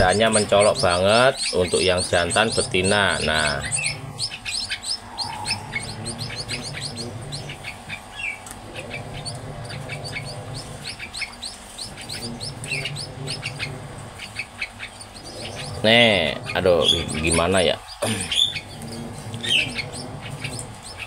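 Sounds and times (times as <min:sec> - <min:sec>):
bird chicks chirping: 0:00.0 - 0:21.0.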